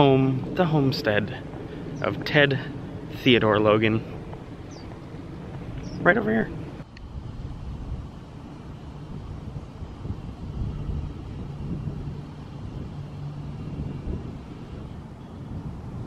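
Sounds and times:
steady low hum: 0.0 - 16.0
vehicle engine rumble: 0.0 - 16.0.

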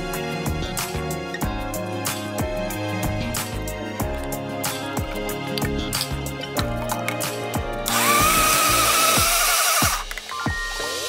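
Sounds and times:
background music with a beat: 0.0 - 11.0
electric blender motor whining: 7.9 - 10.1.

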